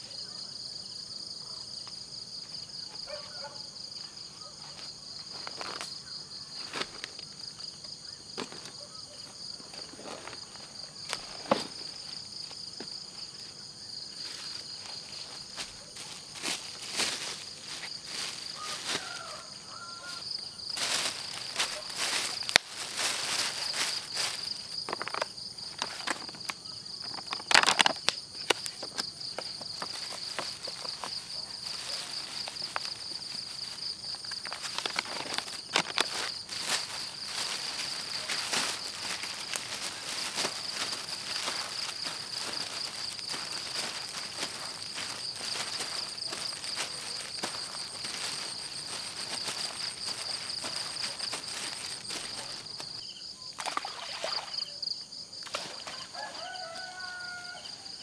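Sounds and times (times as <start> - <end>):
night insects trilling: 0.0 - 58.0
plastic bag rustling and crinkling: 20.8 - 26.5, 27.1 - 53.0.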